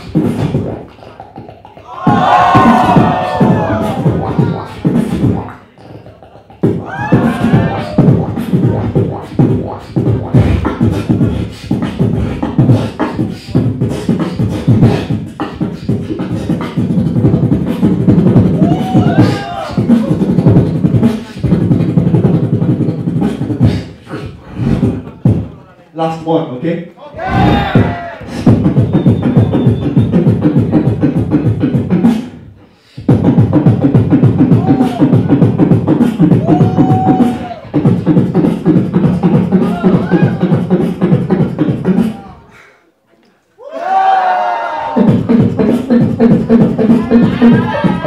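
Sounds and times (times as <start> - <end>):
pitched vocal sweep: 0.0 - 25.6, 27.0 - 42.9, 44.8 - 48.0
beatboxing through microphone: 0.0 - 43.4, 44.8 - 48.0
crowd screaming and cheering: 1.8 - 4.3, 6.8 - 8.1, 18.6 - 19.9, 27.2 - 28.4, 34.5 - 35.3, 36.3 - 37.7, 43.6 - 45.1.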